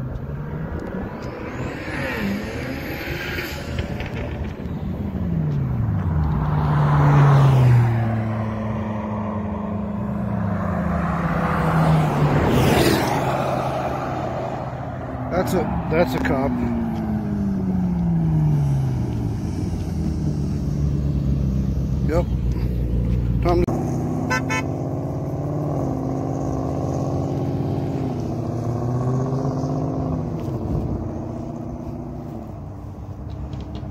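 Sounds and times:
car engine pulling away: 0.0s - 33.9s
car engine revving: 0.0s - 33.9s.

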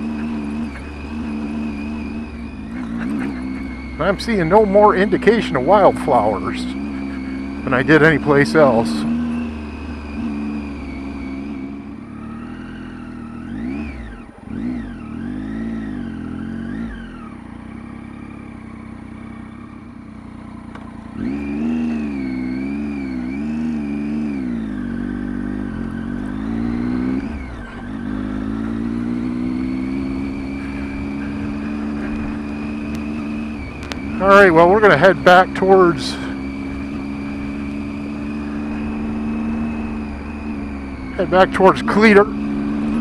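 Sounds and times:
motorcycle engine revving: 0.0s - 43.0s.

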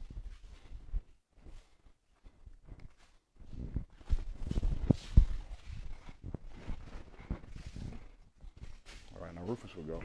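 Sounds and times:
cloth rustling: 0.0s - 9.8s.

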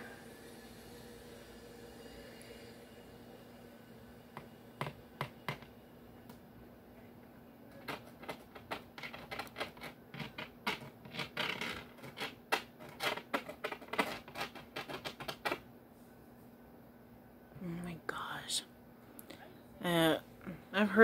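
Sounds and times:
steady low hum: 0.0s - 13.9s.

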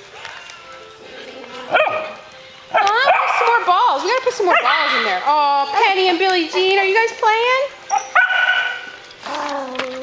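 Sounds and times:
hubbub of dogs playing: 0.0s - 10.0s
dog barking: 1.7s - 2.2s, 2.8s - 3.6s, 4.5s - 5.0s, 7.9s - 8.9s
woman speaking: 2.8s - 7.8s.

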